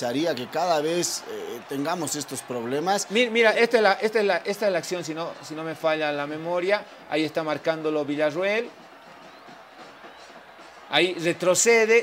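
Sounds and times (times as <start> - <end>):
man speaking: 0.0 - 8.2.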